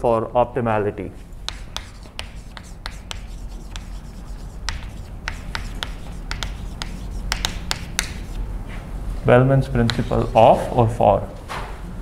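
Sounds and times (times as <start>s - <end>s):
chalk tapping and scratching: 1.5s - 8.4s, 9.8s - 10.8s.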